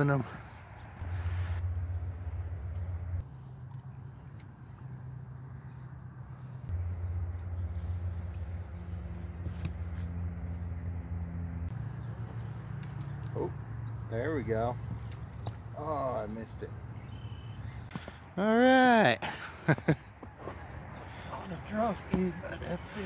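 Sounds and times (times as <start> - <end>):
road traffic drone: 0.0 - 23.0.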